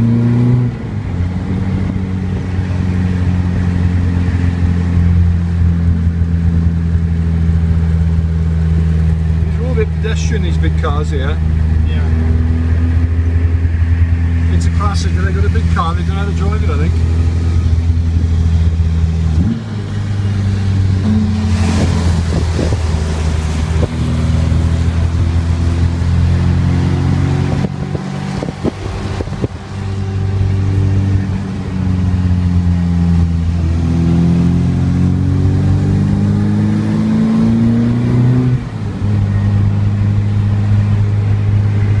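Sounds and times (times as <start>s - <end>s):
car engine accelerating: 0.0s - 42.0s.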